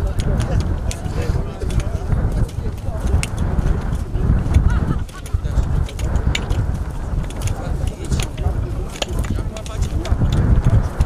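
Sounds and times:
heavy low rumble: 0.0s - 11.0s
hoes chopping stony ground: 0.0s - 11.0s.

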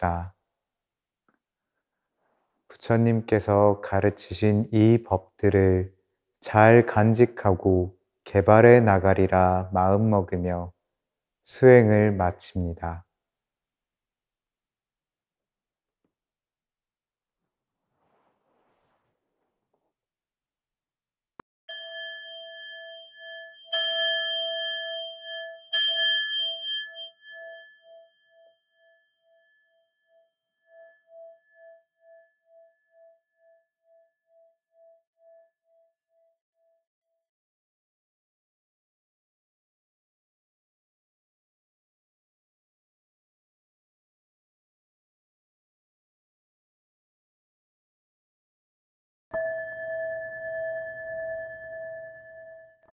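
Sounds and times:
meditation bell ringing: 21.7s - 29.5s, 49.4s - 52.9s.

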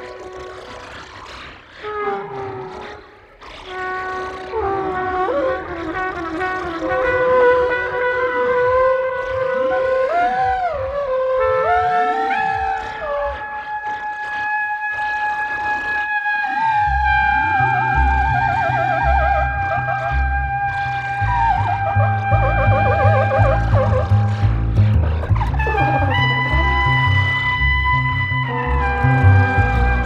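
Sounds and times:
trumpet and trombone notes: 4.4s - 10.8s, 16.2s - 30.0s
low pulsing bass notes: 16.9s - 30.0s.

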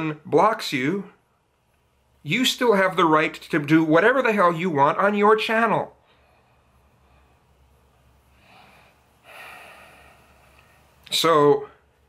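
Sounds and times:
low steady hum: 0.0s - 12.0s
man breathing: 6.0s - 11.0s.

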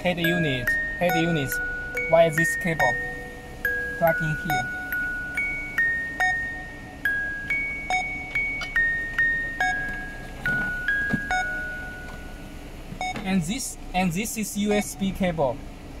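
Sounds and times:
bell-like melody: 0.0s - 12.9s.

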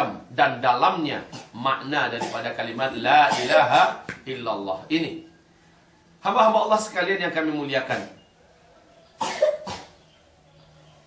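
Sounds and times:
man coughing: 2.2s - 2.5s, 3.2s - 4.0s, 9.2s - 10.0s.

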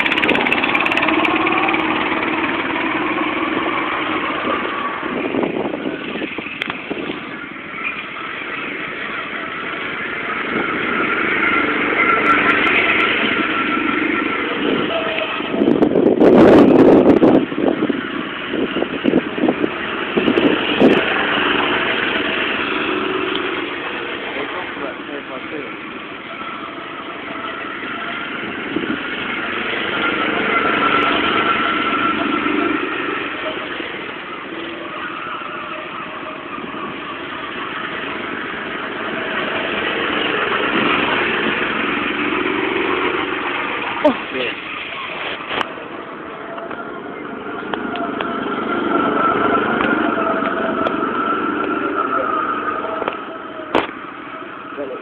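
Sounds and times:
go-kart engines running: 0.0s - 55.0s.

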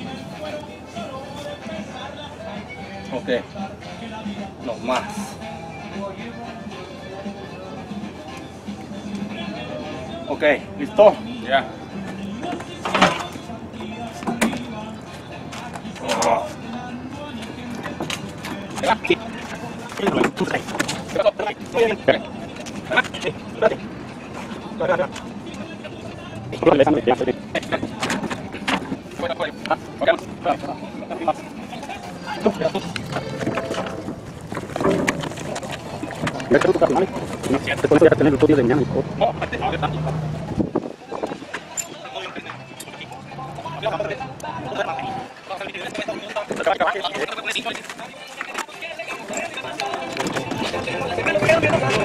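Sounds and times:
knocks and rattles: 33.4s - 37.5s.

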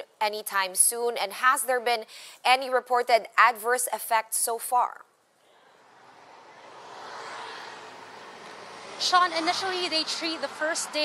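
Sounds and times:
engine noise: 5.6s - 11.0s.

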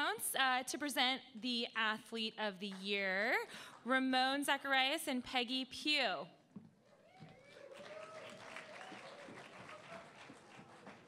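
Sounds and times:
faint audience applause: 7.0s - 11.0s.

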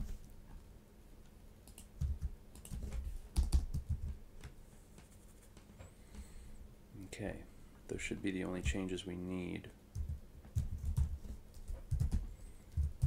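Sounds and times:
computer keyboard keystrokes: 1.6s - 4.6s, 9.9s - 13.0s.

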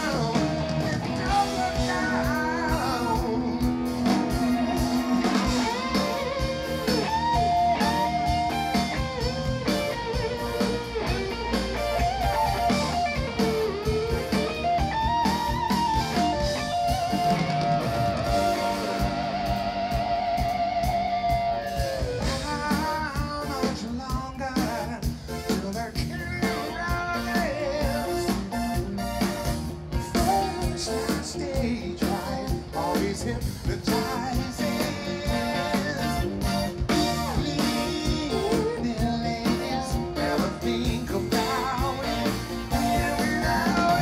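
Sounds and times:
lead vocal singing: 0.0s - 9.2s, 22.0s - 28.8s, 30.0s - 44.0s
bass and drums: 0.0s - 44.0s
electric guitar solo: 3.4s - 22.5s.

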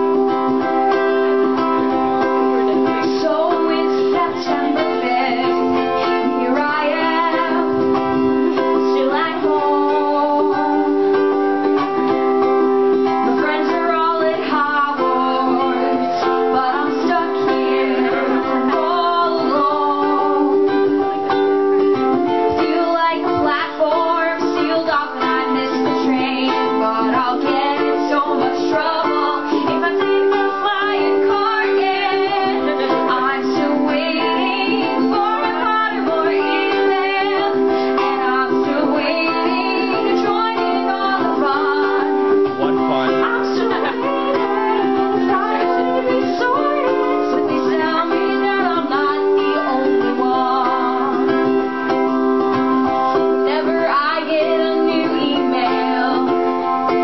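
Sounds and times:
ukulele strumming: 0.0s - 57.0s
woman singing: 0.0s - 57.0s.

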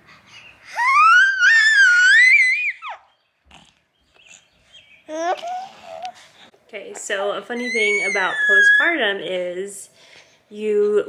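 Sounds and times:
baby squealing: 0.7s - 3.1s, 7.6s - 9.0s
baby cooing: 5.1s - 6.2s.

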